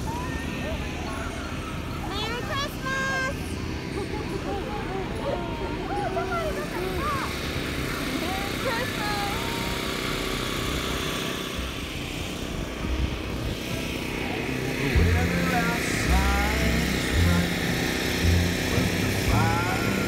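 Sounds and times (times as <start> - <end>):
car rumble from inside cabin: 12.5 - 20.0
song with bass and singing: 14.6 - 20.0.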